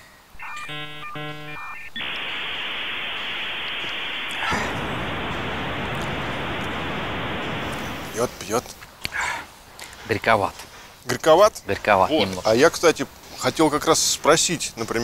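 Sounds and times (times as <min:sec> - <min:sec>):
static hiss: 0:00.0 - 0:09.0
electronic beeping tones: 0:00.4 - 0:04.8.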